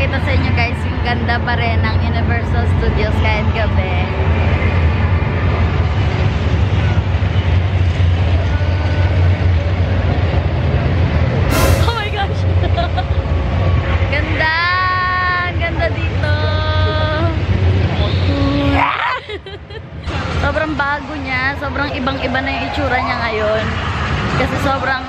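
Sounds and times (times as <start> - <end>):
low rumble: 11.5 - 13.6.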